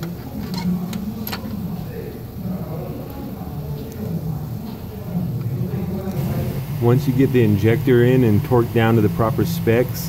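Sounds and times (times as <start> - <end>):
low mechanical hum: 0.0 - 10.0
man talking: 5.1 - 10.0.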